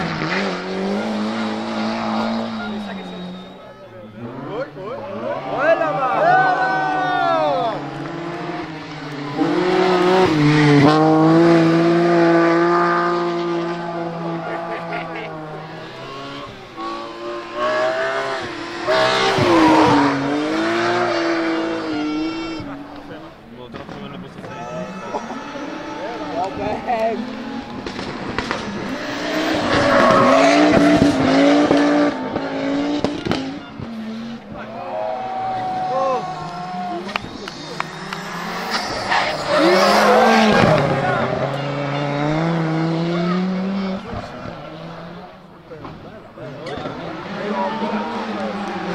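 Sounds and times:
rally car engines revving: 0.0 - 48.9
tyre squeal: 35.1 - 41.0.

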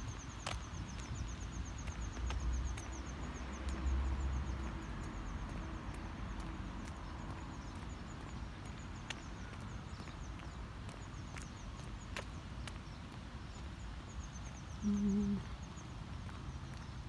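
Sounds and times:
small bird chirping: 0.1 - 15.8.

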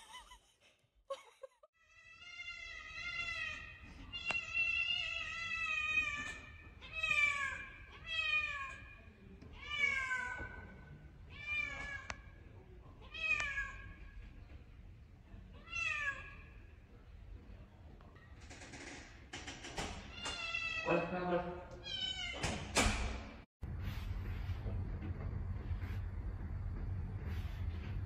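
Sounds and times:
cat meowing: 20.1 - 20.9.

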